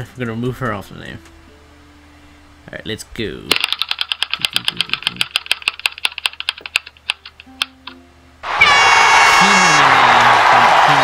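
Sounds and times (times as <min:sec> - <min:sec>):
spinning wheel ticking clicks: 0:03.5 - 0:08.0.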